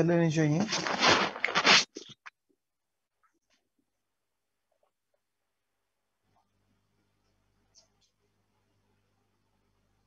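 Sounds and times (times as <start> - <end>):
loud rustling: 0.7 - 2.1.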